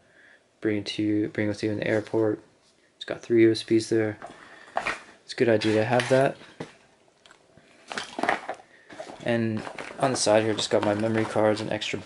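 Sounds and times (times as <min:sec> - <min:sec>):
fabric pouch rustling and clicking: 0:07.9 - 0:11.8.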